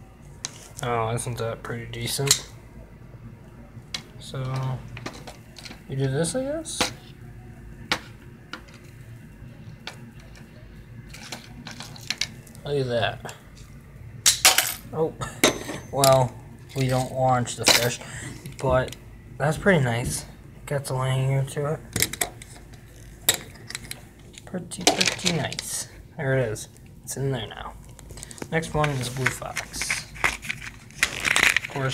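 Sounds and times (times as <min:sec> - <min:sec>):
faint low hum: 0:00.0 - 0:31.9.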